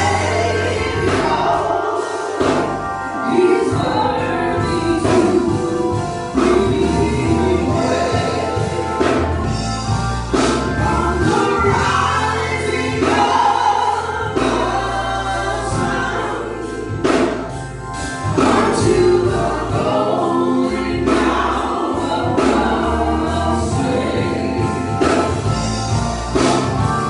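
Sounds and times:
group singing gospel: 0.0s - 27.0s
instrumental accompaniment with beat: 0.0s - 27.0s.

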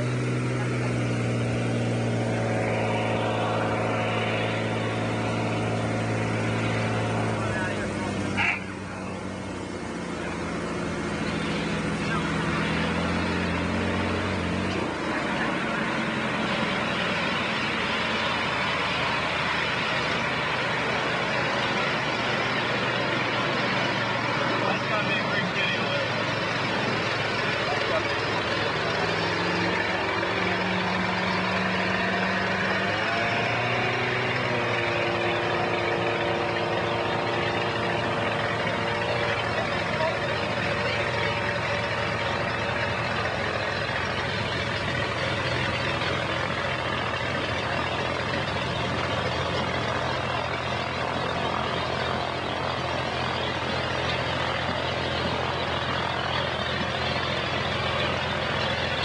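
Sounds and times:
propeller engine running: 0.0s - 59.0s.

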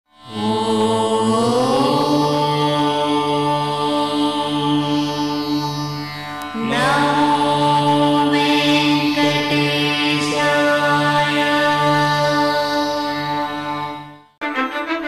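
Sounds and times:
devotional music with drone tones: 0.2s - 15.0s.

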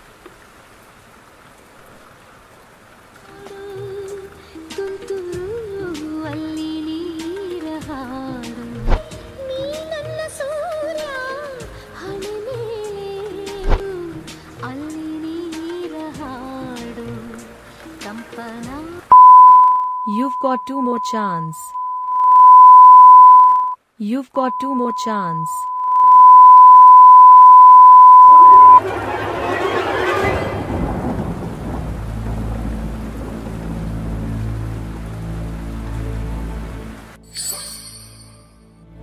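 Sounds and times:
phone notification beep: 19.1s - 23.8s, 24.4s - 28.8s
low rumbling hum: 25.7s - 36.8s
thunderclap: 28.8s - 34.4s.

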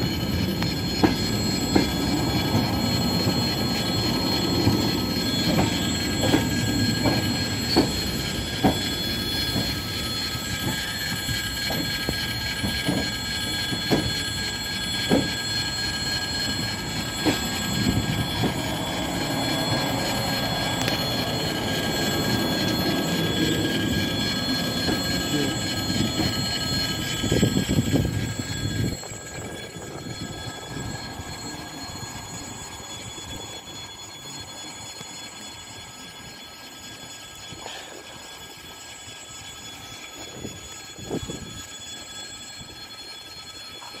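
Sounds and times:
sharp clicks of train: 0.0s - 44.0s
train carriages rumbling: 0.0s - 44.0s.

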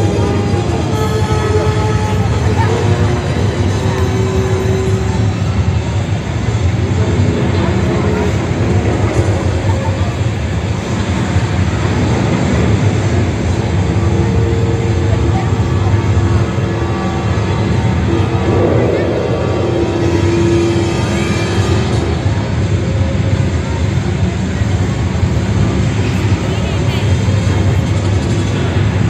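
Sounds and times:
machine engine rumbling: 0.0s - 29.0s.

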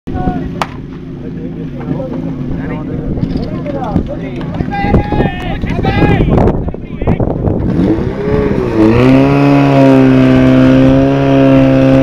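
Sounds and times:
sharp crack: 0.6s - 1.0s.

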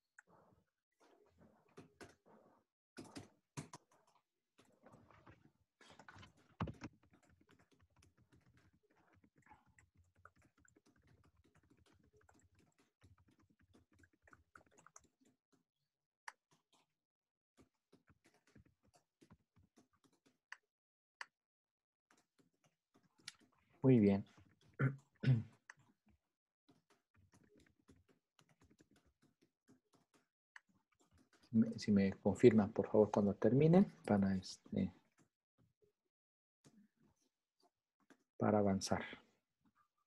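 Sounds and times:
faint typing on a keyboard: 0.0s - 15.7s, 17.6s - 20.6s, 22.1s - 35.4s
faint keyboard typing: 3.0s - 15.4s.

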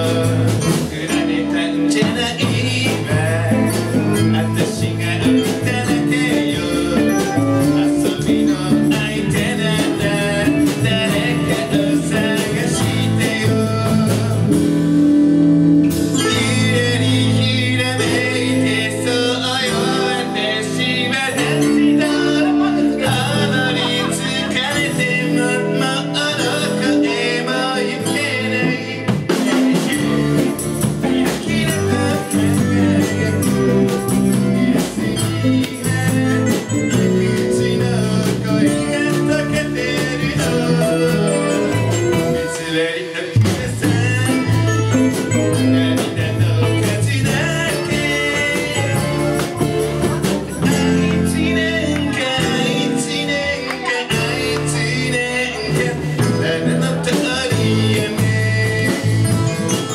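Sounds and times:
lead vocal singing: 0.0s - 59.9s
live band playing pop song: 0.0s - 59.9s.

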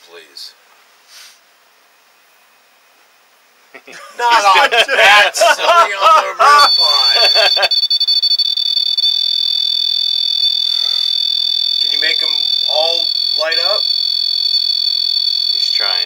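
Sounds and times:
high-pitched electronic alert tone: 6.5s - 16.0s.

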